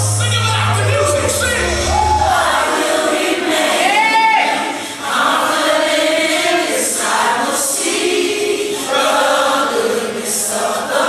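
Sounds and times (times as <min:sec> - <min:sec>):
gospel choir singing: 0:00.0 - 0:11.0
music: 0:00.0 - 0:11.0.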